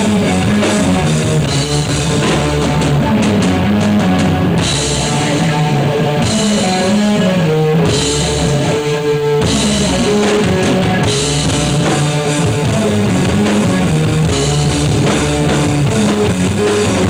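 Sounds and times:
live rock band playing: 0:00.0 - 0:17.0.

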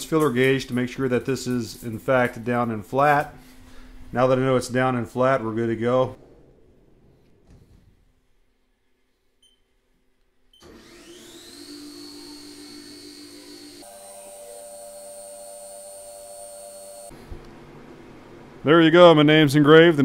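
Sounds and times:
end mill cutting metal: 0:10.6 - 0:17.1
mill spindle whining: 0:10.6 - 0:17.1.

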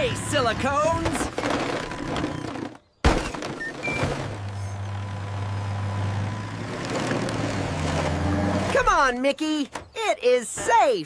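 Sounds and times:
heavy vehicle engine drone: 0:00.0 - 0:02.7, 0:03.6 - 0:08.8.

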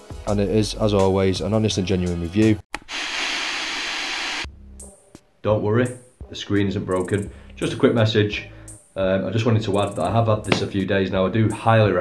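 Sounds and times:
tv static hiss: 0:02.8 - 0:04.5.

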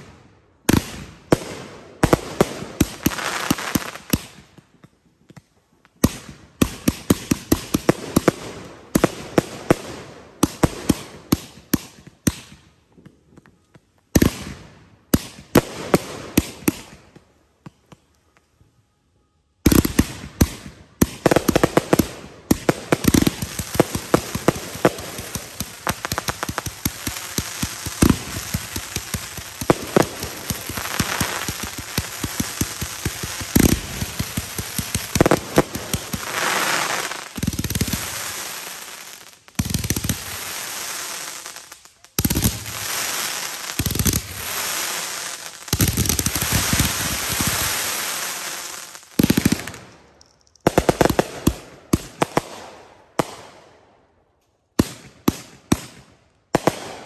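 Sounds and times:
firework cake firing: 0:21.5 - 0:51.2.

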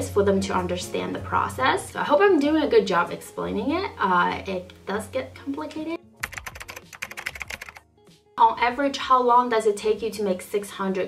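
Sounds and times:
rapid keyboard typing: 0:06.2 - 0:07.8.

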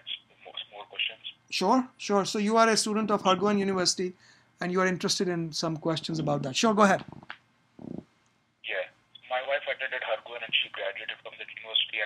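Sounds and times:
man talking over telephone: 0:00.0 - 0:07.1, 0:08.7 - 0:12.0
caller speaking: 0:00.0 - 0:07.2, 0:08.7 - 0:12.0.

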